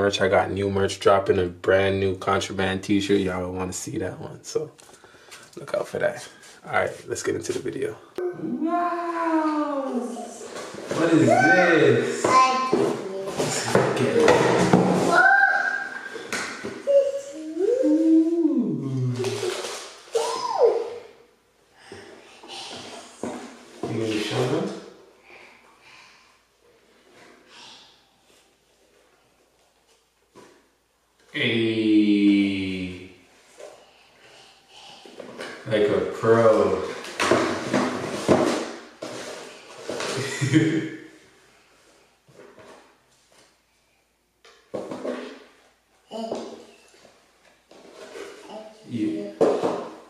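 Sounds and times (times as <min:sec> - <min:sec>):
wordless vocal ooh: 0:17.4 - 0:19.5.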